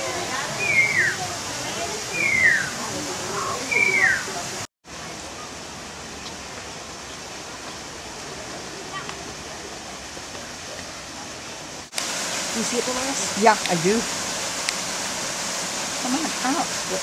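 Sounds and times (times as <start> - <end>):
water rushing: 0.0 - 17.0.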